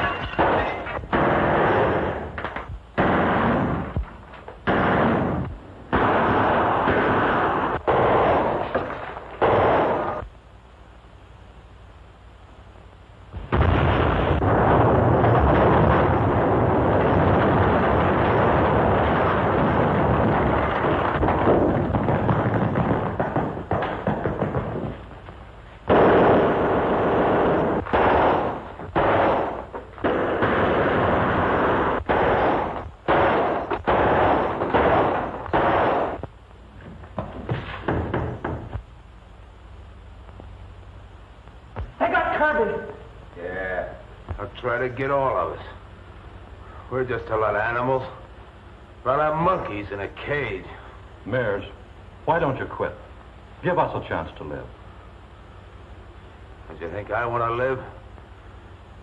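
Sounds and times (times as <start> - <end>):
gunfire reports: 0.0 - 10.2, 13.4 - 25.0, 25.8 - 36.3
heavy continuous firing: 0.0 - 10.5, 13.2 - 40.4.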